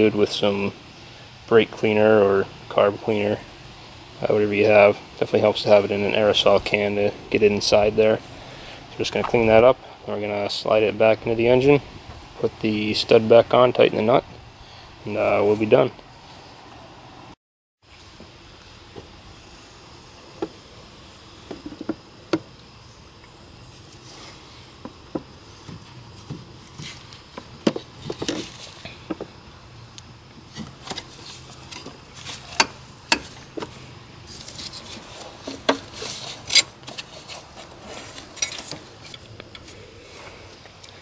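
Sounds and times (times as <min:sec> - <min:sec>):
metal tube tapping engine parts: 0:21.4 - 0:22.5, 0:27.2 - 0:29.4, 0:30.6 - 0:33.8
rustling: 0:23.7 - 0:29.4, 0:30.3 - 0:41.0.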